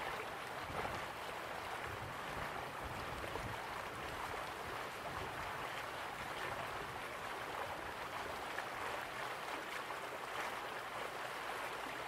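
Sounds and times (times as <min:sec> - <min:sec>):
stream water flowing: 0:00.0 - 0:12.0.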